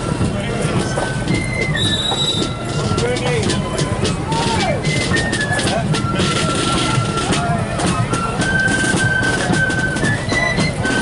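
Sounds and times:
flutes holding notes: 0.0s - 11.0s
steady drum beats: 0.0s - 11.0s.

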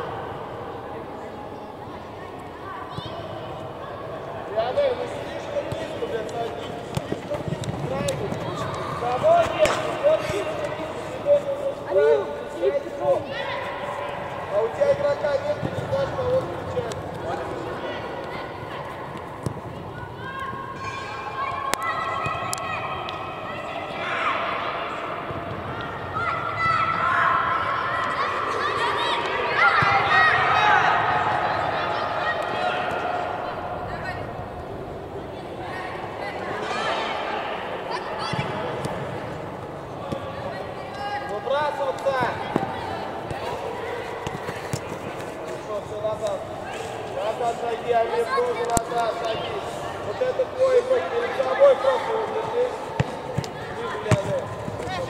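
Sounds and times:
voices shouting in echoing hall: 2.1s - 55.0s.

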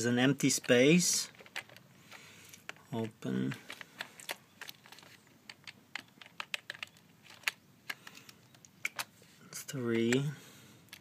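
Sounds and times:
keyboard keys clicking: 3.7s - 9.1s.

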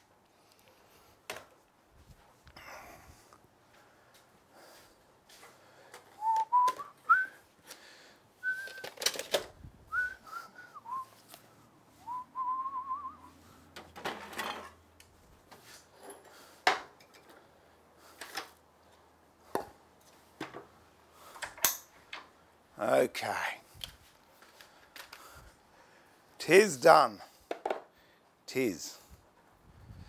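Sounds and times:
man whistling a tune: 6.2s - 7.4s, 8.4s - 9.0s, 9.9s - 11.2s, 12.0s - 13.4s
wooden pieces knocking and clattering: 8.6s - 9.5s, 13.8s - 14.8s, 27.5s - 27.9s.

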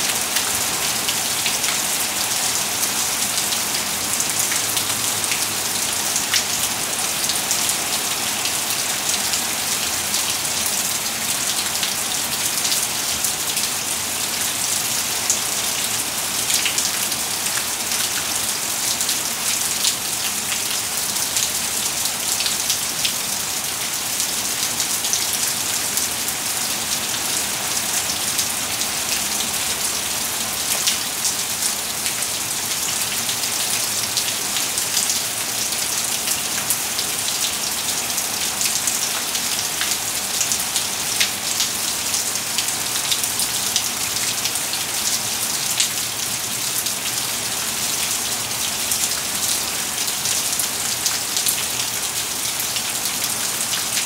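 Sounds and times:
heavy rain on pavement: 0.0s - 54.0s.

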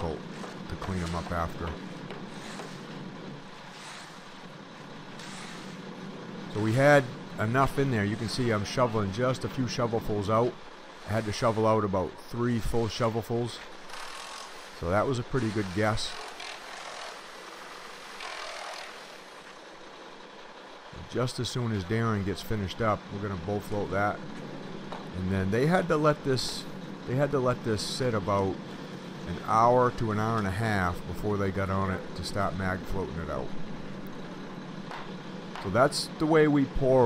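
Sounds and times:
distant running engine: 0.0s - 37.0s.

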